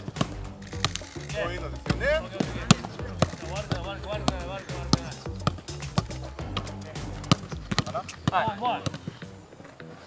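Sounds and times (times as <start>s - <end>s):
football thuds: 0.0s - 9.4s.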